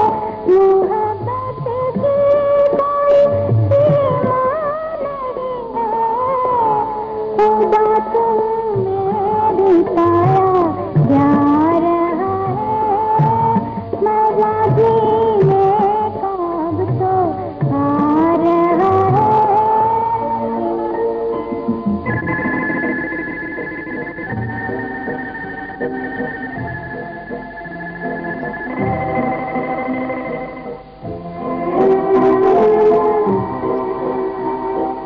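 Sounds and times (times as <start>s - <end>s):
orchestral backing: 20.8s - 35.0s
sliding melody line: 21.8s - 33.7s.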